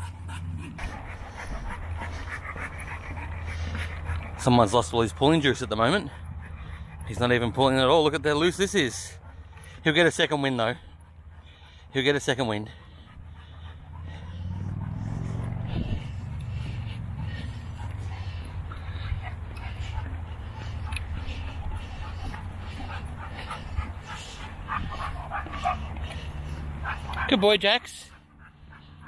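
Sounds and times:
wind rumble on microphone: 0:14.6 - 0:20.1.

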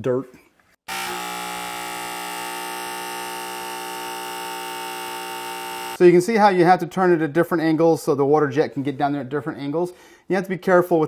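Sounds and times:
electric pump buzzing hum: 0:00.9 - 0:06.0.

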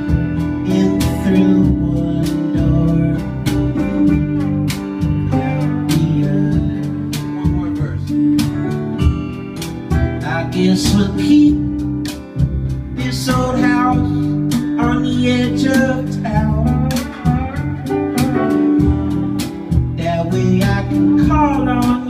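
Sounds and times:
acoustic guitar strumming: 0:00.0 - 0:22.0
slide guitar lines: 0:00.0 - 0:22.0.

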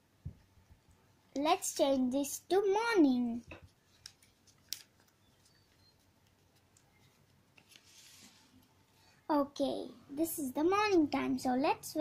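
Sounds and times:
paper rustling: 0:03.5 - 0:08.8.

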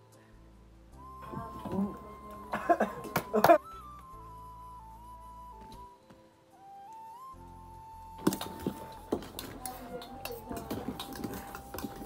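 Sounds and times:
background music with held tone: 0:00.0 - 0:12.0.

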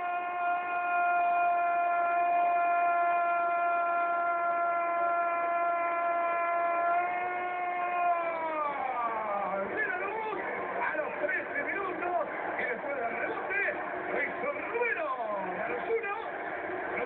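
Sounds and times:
commentator's long held goal cry: 0:00.0 - 0:09.8.

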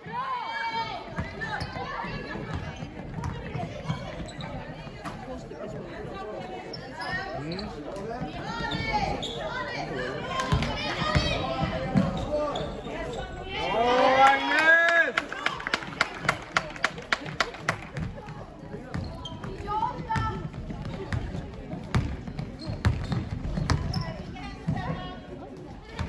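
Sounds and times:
loud shout: 0:13.5 - 0:15.5
basketball bouncing on floor: 0:18.9 - 0:24.0.

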